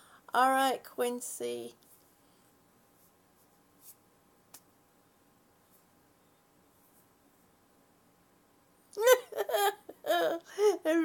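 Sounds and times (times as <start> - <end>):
soft rustle: 1.7 - 4.8, 5.6 - 7.7.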